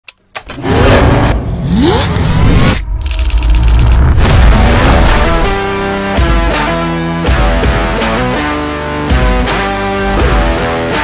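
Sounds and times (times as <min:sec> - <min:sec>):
car engine revving: 0:00.6 - 0:06.8.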